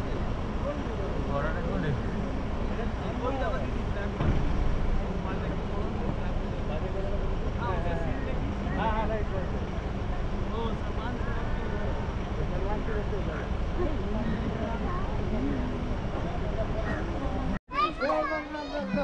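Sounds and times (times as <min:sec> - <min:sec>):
indistinct voices talking: 0:00.0 - 0:19.0.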